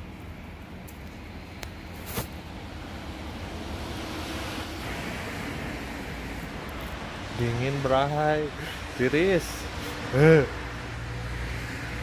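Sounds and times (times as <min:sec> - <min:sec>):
distant traffic: 0:00.0 - 0:12.0.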